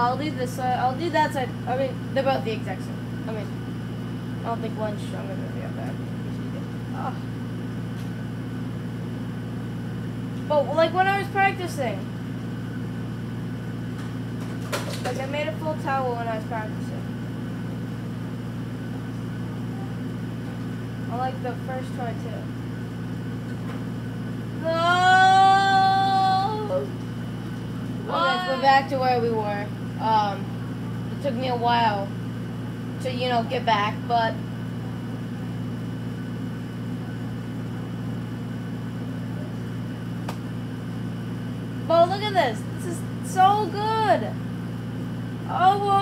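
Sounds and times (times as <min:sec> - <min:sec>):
low mechanical hum: 0:00.0 - 0:46.0
young voice crying no: 0:24.6 - 0:26.9, 0:28.1 - 0:28.9.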